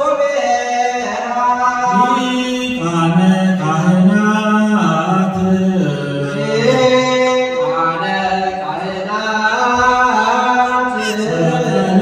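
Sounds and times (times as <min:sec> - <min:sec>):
men chanting in long-held notes: 0:00.0 - 0:12.0.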